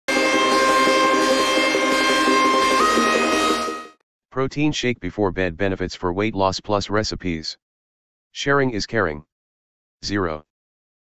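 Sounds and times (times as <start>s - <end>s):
synthesized intro music: 0.1s - 4.0s.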